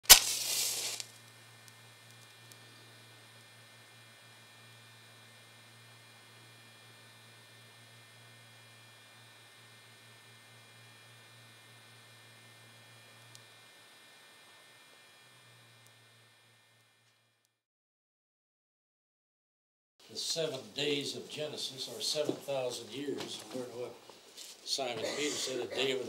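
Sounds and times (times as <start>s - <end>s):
faint electrical hum: 0.1s - 17.1s, 20.0s - 26.0s.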